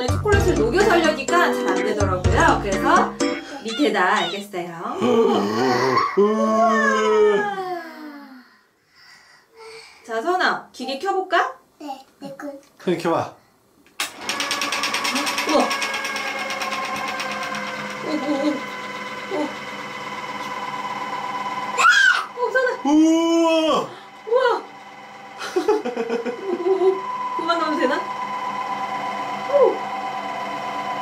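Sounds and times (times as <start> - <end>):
fondue fountain motor humming: 0.0 - 4.3, 14.0 - 31.0
rattling pulse of auger: 14.0 - 28.6.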